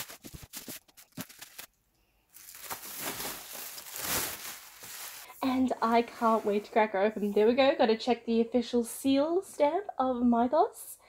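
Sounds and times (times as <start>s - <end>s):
bubble wrap crinkling: 0.0s - 6.6s.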